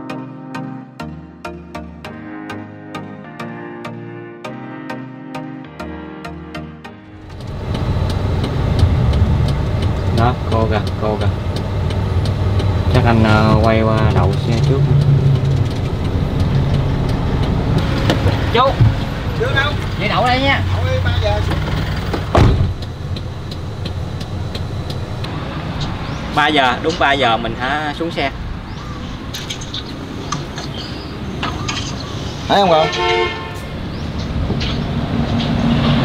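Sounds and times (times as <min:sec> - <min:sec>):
truck engine running: 0:07.2 - 0:32.5
sharp knock: 0:21.6 - 0:22.8.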